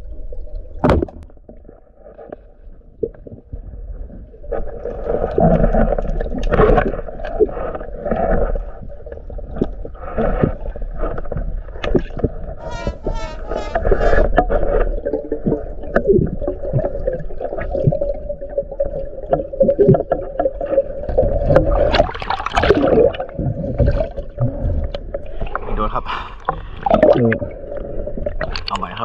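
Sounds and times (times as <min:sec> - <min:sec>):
muffled underwater noise: 0:12.3 - 0:14.9.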